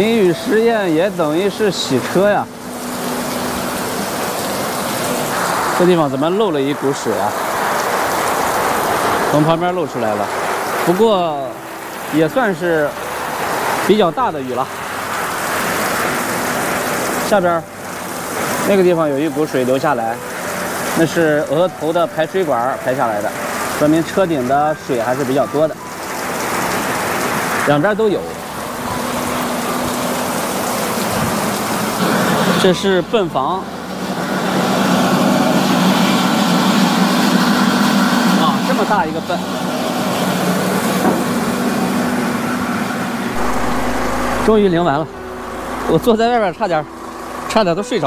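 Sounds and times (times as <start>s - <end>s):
electric water pump humming: 0.0s - 48.0s.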